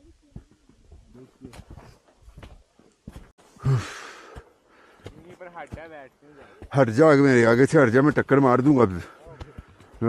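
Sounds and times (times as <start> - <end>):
man sighing and breathing heavily: 3.4 - 5.2.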